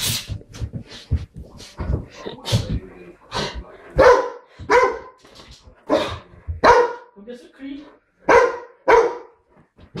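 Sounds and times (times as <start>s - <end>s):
dog barking: 4.0s - 5.2s, 5.9s - 7.1s, 8.2s - 9.4s.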